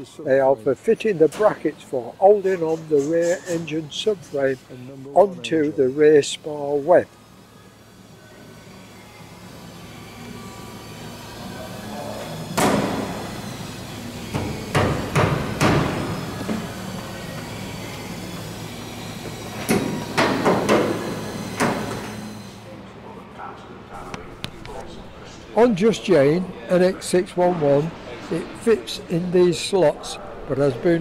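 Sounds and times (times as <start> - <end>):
workshop noise: 0.0 - 31.0
hammer blows and knocks: 14.3 - 16.6.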